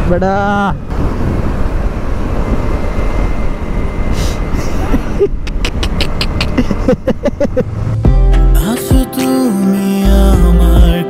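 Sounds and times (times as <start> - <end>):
wind rush: 0.0 - 8.0
motorcycle road noise: 0.0 - 8.1.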